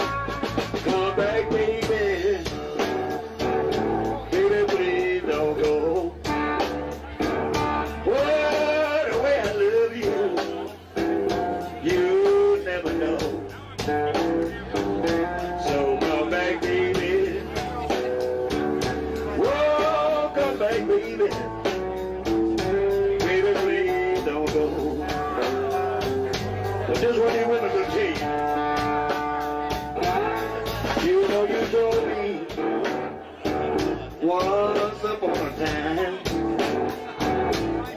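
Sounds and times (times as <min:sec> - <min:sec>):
bass: 0:00.0 - 0:37.9
blues lead guitar bent notes: 0:00.0 - 0:37.9
steady drum beat: 0:00.0 - 0:37.9.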